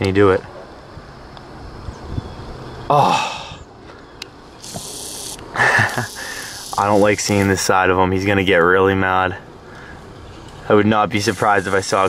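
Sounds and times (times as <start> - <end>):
person laughing: 5.5 - 6.6.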